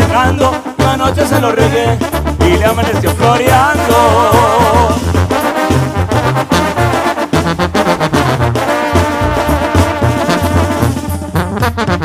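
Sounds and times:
steady drum beats: 0.0 - 12.0
trumpets and trombones: 0.0 - 12.0
walking bass line: 0.0 - 12.0.

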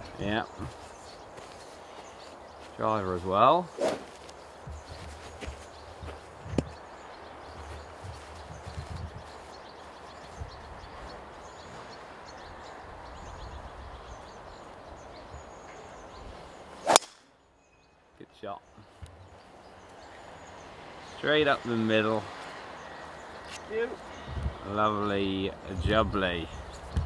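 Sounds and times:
golf club striking ball: 16.8 - 17.3.

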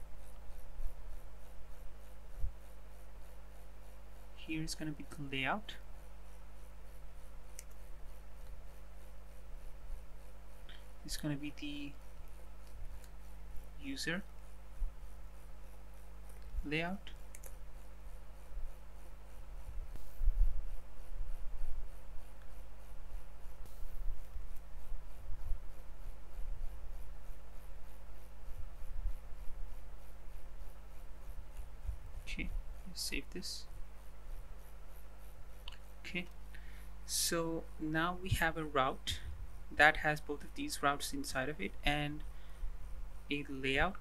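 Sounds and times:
faint hiss: 0.0 - 44.0
low electrical hum: 0.0 - 44.0
sharp click: 16.3 - 17.6.

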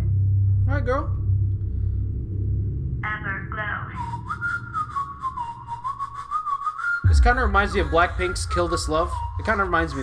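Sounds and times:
whistled melody: 4.0 - 10.0.

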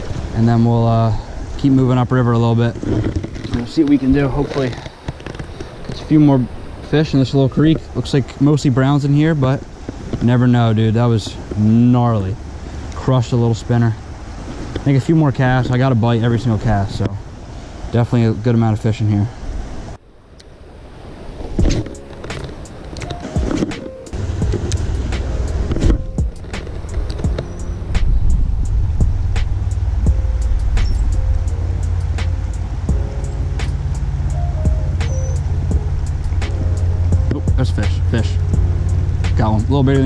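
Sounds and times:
steady low rumble: 24.1 - 40.0.

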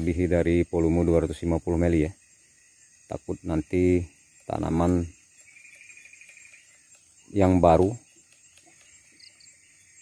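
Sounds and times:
faint insect trill: 0.0 - 10.0.

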